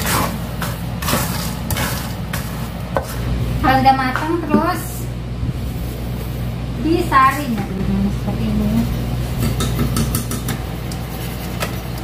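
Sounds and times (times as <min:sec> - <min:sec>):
spatula scraping peanuts in salt: 0:00.0 - 0:03.3
steady low hum: 0:00.0 - 0:12.0.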